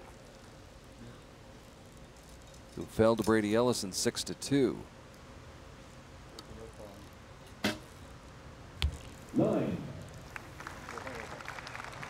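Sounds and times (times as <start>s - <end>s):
faint outdoor background: 0.0s - 12.0s
arrow hitting target: 7.6s - 7.9s.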